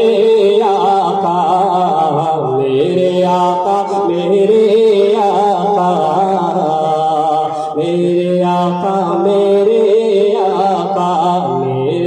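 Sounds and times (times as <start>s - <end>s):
man singing unaccompanied: 0.0s - 12.0s.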